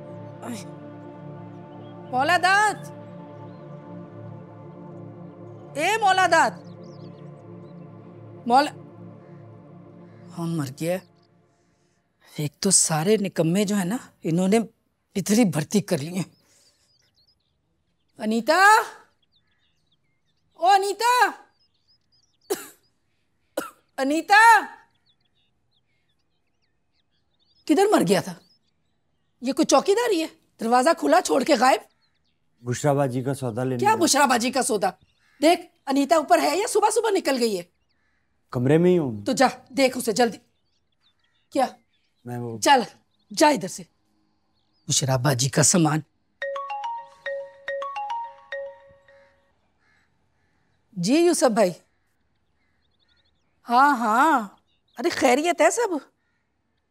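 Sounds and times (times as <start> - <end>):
faint bird chirps: 1.4 - 56.9
woman coughing: 22.5 - 22.8, 23.6 - 23.8
marimba phone ringtone: 46.4 - 49.4.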